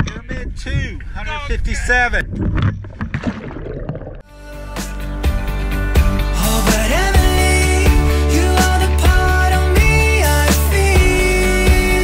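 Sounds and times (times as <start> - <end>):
water noise: 0.0 - 4.3
wind: 0.0 - 4.3.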